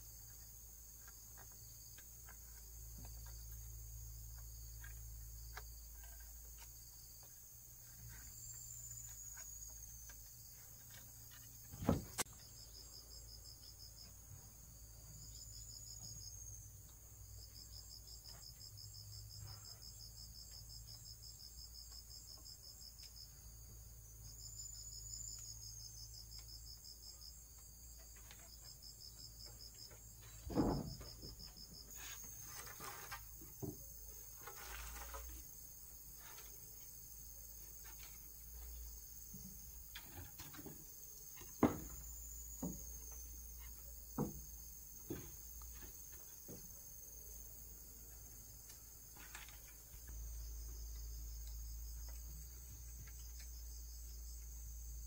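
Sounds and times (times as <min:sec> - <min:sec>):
insects trilling: 0:00.0 - 0:55.0
knocks of wooden poles: 0:08.1 - 0:12.5, 0:27.5 - 0:36.6, 0:37.6 - 0:46.9.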